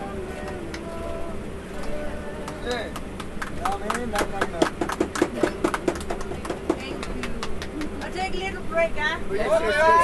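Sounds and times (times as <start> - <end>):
steady low hum: 0.0 - 10.0
people clapping: 0.2 - 1.0, 1.8 - 8.3.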